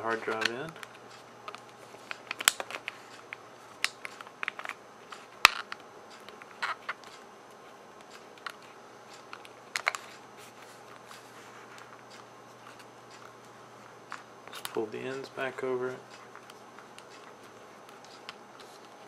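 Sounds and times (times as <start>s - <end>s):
hard drive clicks and scrapes: 16.0s - 19.0s.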